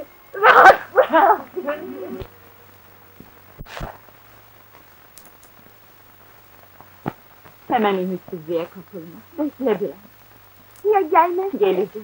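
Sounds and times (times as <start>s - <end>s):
faint crackles: 0.0s - 12.0s
film soundtrack hiss: 0.0s - 12.0s.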